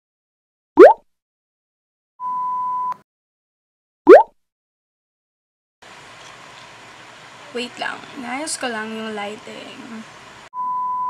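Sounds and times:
upward pitch swoop: 0:00.8 - 0:01.0, 0:04.1 - 0:04.3
steady pure beep: 0:02.2 - 0:03.0, 0:10.6 - 0:11.0.

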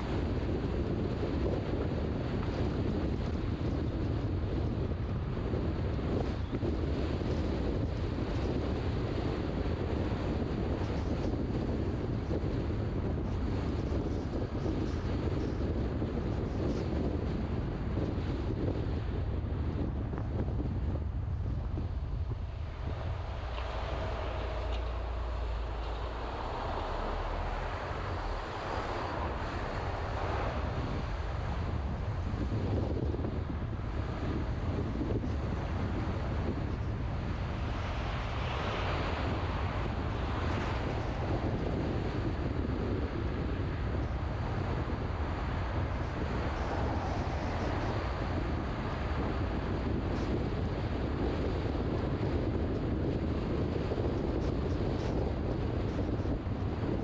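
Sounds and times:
road and tyre rumble: 0:00.0 - 0:57.0
wind rushing over microphone: 0:00.0 - 0:57.0.

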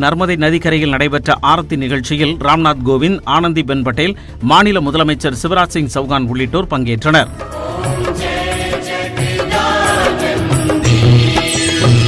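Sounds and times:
drum strokes: 0:07.3 - 0:12.0
chanted singing over instruments: 0:07.4 - 0:12.0.

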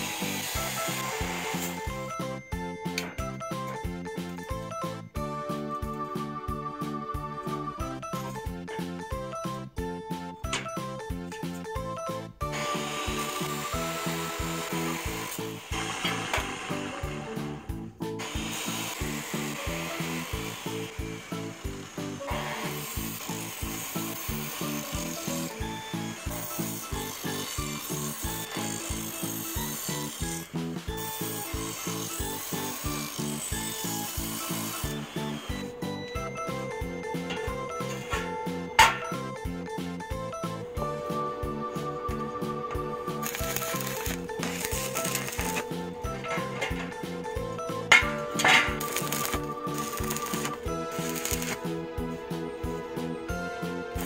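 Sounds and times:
chop saw cutting steel: 0:00.0 - 0:03.4, 0:12.5 - 0:39.7, 0:42.5 - 0:52.2
background music with beat: 0:00.0 - 0:54.0.

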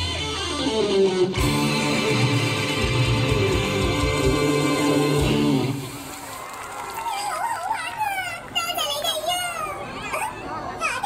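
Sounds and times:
show music with guitar: 0:00.0 - 0:05.9
high-pitched sing-song voices: 0:00.9 - 0:05.9.

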